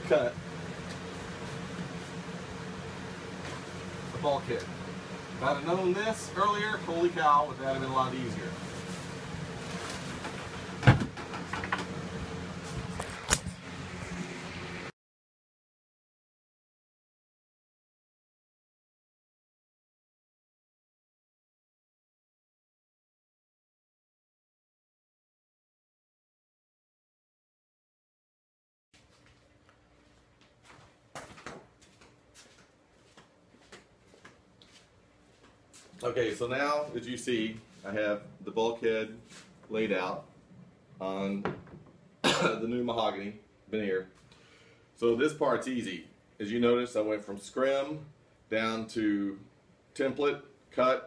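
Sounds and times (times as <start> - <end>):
steady hum: 0.0 - 14.9, 29.0 - 51.0.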